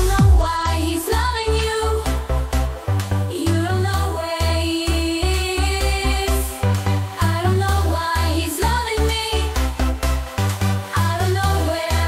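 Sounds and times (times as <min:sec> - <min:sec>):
sung vocal line: 0:00.0 - 0:02.6, 0:10.9 - 0:12.0
dance-pop song: 0:00.0 - 0:12.0
pulsing electronic bass beat: 0:00.0 - 0:12.0.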